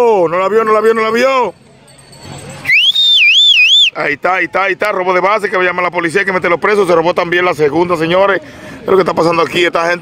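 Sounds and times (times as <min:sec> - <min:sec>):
high wavering whistle: 0:02.6 - 0:04.0.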